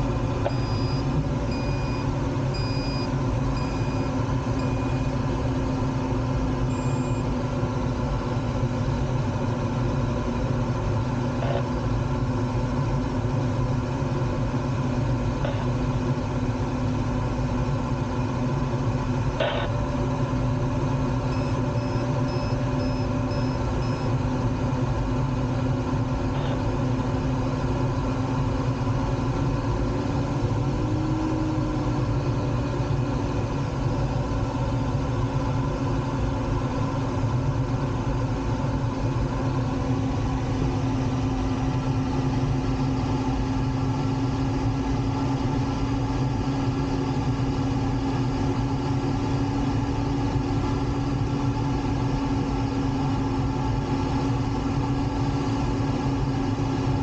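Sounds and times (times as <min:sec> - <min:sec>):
airflow in glider cockpit: 0:00.0 - 0:57.0.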